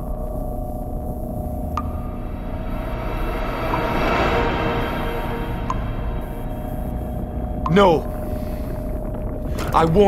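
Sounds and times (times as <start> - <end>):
low steady rumble: 0.0 - 9.9.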